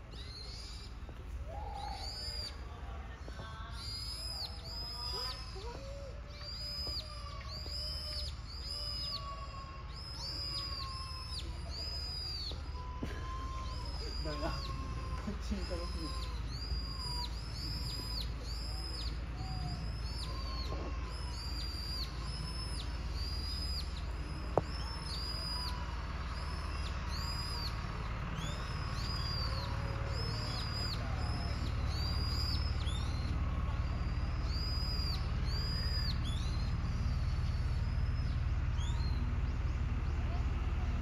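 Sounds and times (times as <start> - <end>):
low steady rumble: 0.0 - 41.0
small bird chirping: 0.0 - 41.0.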